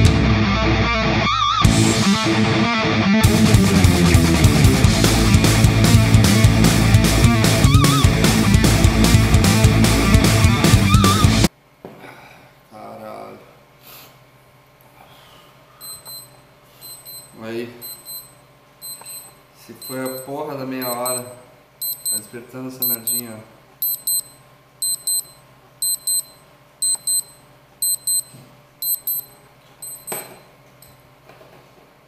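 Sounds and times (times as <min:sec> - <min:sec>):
digital timer alarm beeping: 0:15.8 - 0:30.3.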